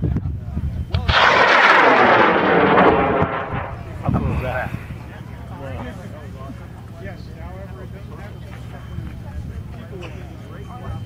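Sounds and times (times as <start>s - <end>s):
rocket motor roaring: 1.0s - 4.9s.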